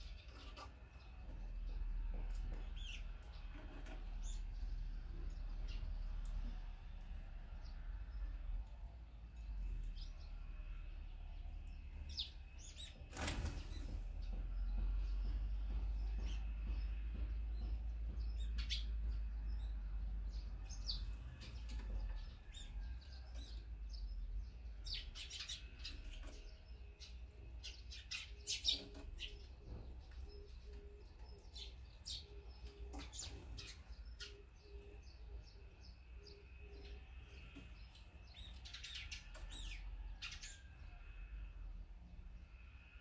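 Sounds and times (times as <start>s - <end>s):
small birds chirping: 0.0s - 43.0s
bird wingbeats: 13.0s - 14.3s.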